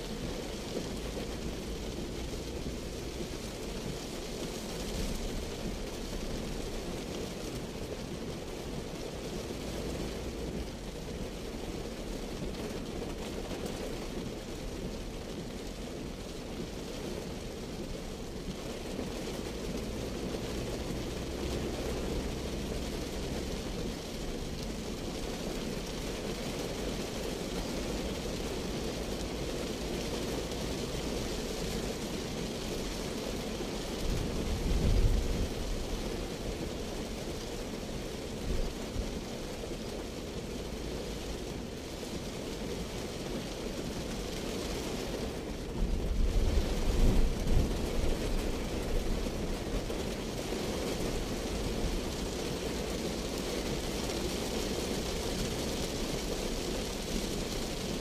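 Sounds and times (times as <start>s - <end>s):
heavy rain on car roof: 0.0s - 58.0s
tyre noise on wet road: 0.0s - 58.0s.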